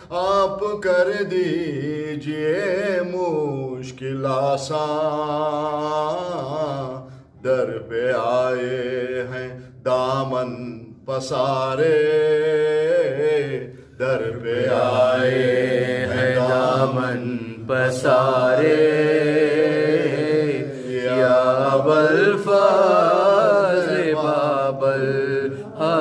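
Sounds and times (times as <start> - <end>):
man singing devotional song: 0.0 - 26.0.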